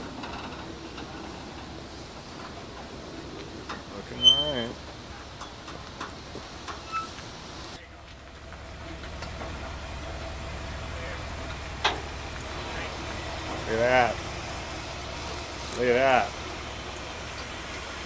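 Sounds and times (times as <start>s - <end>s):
pickup truck engine running: 0.0s - 18.0s.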